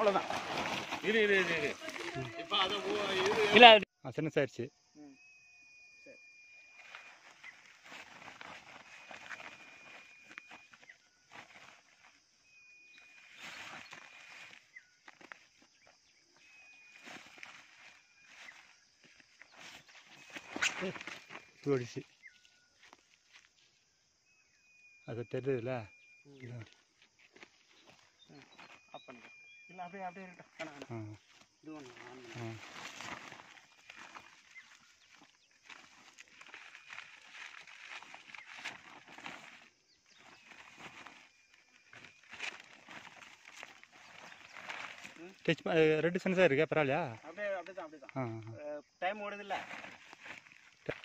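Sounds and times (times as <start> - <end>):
footsteps on dirt: 0.0 - 3.8, 6.8 - 12.3, 26.7 - 29.4, 30.6 - 45.4
plastic sack rustling: 0.0 - 3.8, 6.8 - 12.0, 31.9 - 45.4, 49.6 - 51.0.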